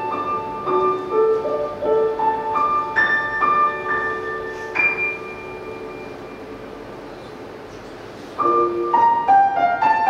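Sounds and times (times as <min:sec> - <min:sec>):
grand piano playing slow high notes: 0:00.0 - 0:06.9, 0:08.4 - 0:10.0.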